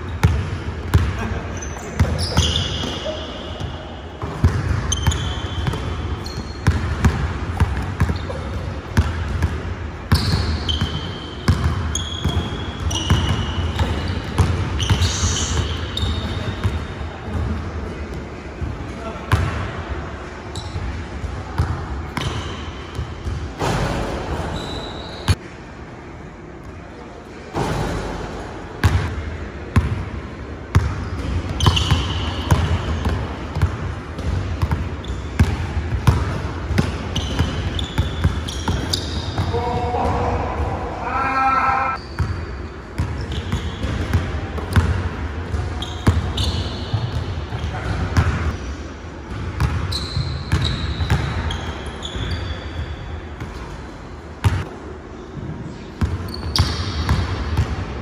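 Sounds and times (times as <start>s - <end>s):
sneakers squeaking: 0.0s - 25.5s, 30.6s - 58.0s.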